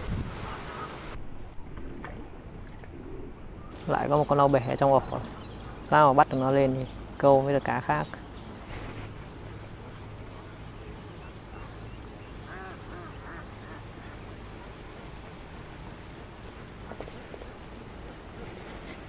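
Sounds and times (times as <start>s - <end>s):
low steady hum: 1.2s - 19.0s
bird calling: 3.7s - 17.1s.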